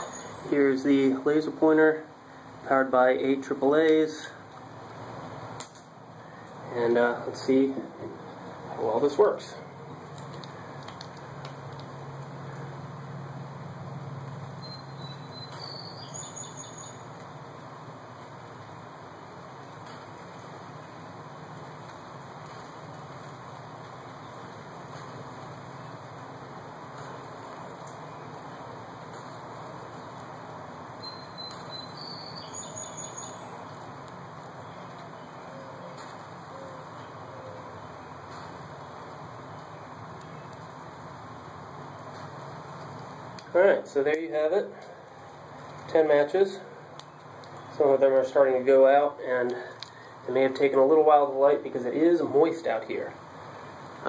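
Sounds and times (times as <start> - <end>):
bird chirping: 0.0 - 0.8, 14.6 - 17.2, 31.0 - 33.9
outdoor background noise: 0.0 - 54.0.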